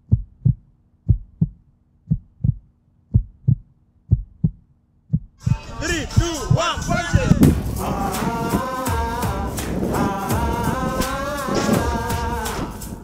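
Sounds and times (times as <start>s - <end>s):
heartbeat thumps: 0.0s - 13.0s
music with singing: 5.4s - 13.0s.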